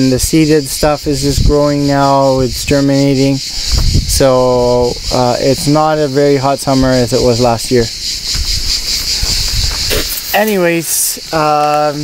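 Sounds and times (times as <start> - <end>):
high-pitched insect chorus: 0.0 - 12.0
handling rumble and thumps: 3.7 - 10.2.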